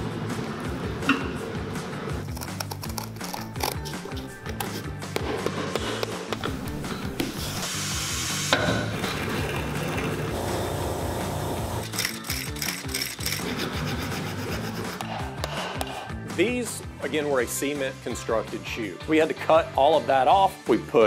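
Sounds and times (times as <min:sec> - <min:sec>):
background music: 0:00.0 - 0:21.0
rasp scraping: 0:02.3 - 0:06.2, 0:11.8 - 0:16.0.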